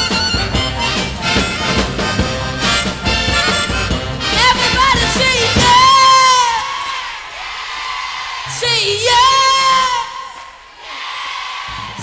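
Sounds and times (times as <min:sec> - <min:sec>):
harmonica melody: 0:00.0 - 0:06.2
live soul band playing: 0:00.0 - 0:06.6.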